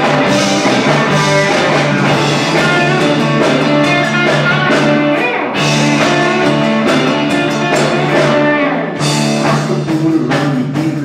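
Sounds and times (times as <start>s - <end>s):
drum kit steady beat: 0.0s - 11.0s
electric guitars: 0.0s - 11.0s.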